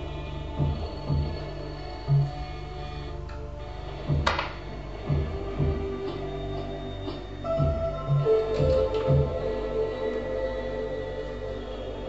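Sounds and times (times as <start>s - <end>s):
low pulsing bass: 0.0s - 12.0s
synthesizer sustained tones: 0.0s - 12.0s.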